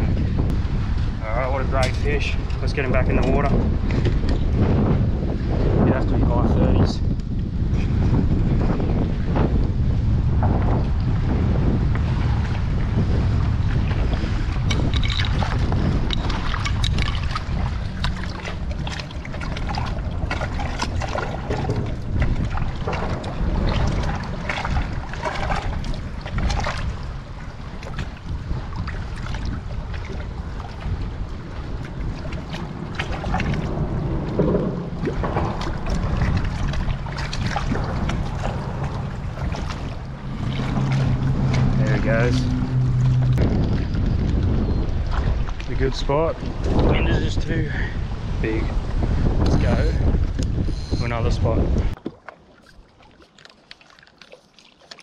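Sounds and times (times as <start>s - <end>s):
wind buffeting microphone: 0.0s - 53.0s
water lapping on rocks: 7.2s - 55.0s
short splashes and knocks: 10.3s - 47.1s, 49.4s - 55.0s.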